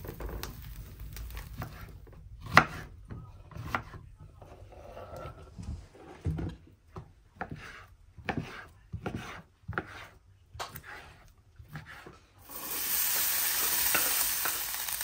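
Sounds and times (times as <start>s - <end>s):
knife chopping on wooden board: 2.4s - 2.9s, 3.5s - 4.0s, 7.0s - 12.1s.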